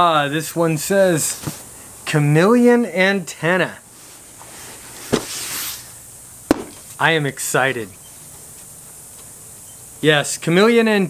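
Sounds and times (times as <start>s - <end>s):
cardboard rustling scrape: 4.0s - 5.9s
knock on cardboard box: 5.1s - 5.3s, 6.5s - 6.8s.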